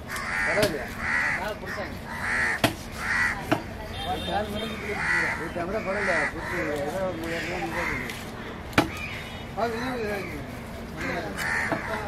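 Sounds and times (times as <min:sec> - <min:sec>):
crows cawing: 0:00.0 - 0:03.7, 0:04.6 - 0:12.0
knife chopping on wooden block: 0:02.6 - 0:02.8, 0:08.7 - 0:09.0.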